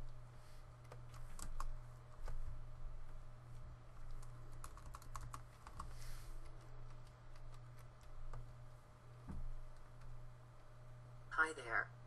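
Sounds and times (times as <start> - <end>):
steady low hum: 0.0 - 12.0
keyboard keystrokes clicking: 4.0 - 5.9.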